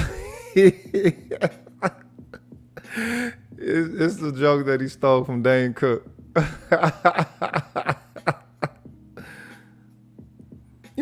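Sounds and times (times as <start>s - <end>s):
man laughing: 0.0s - 3.9s, 6.4s - 8.9s
breathy exhale: 9.2s - 9.8s.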